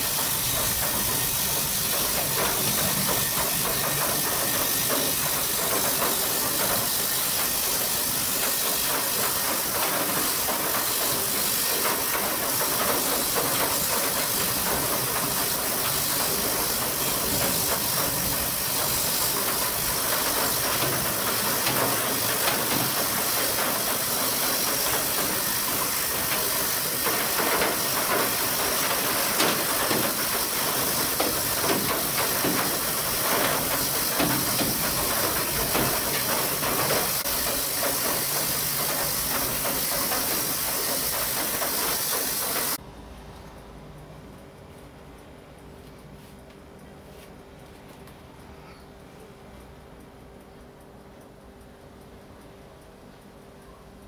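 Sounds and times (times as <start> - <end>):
steady hiss: 0.0 - 42.8.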